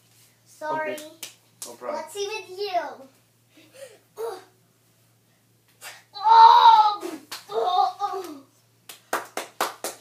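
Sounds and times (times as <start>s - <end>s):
sharp hand claps: 8.2s - 10.0s.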